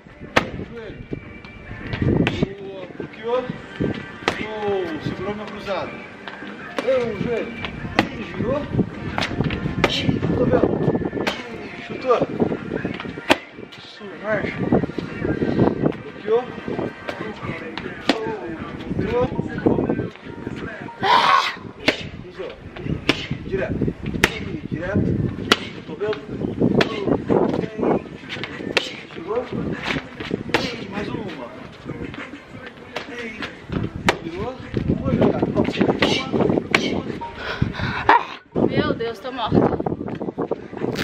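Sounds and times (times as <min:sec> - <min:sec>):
kicks slapping a kick shield: 0:00.3 - 0:00.6, 0:24.2 - 0:24.5, 0:25.4 - 0:25.8
voices and vocal sounds: 0:02.2 - 0:41.0.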